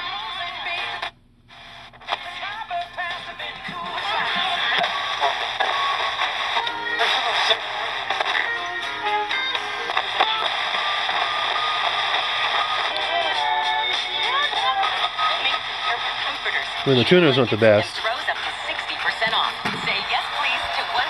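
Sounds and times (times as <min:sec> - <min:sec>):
radio playing music and voices: 0:00.0 - 0:21.0.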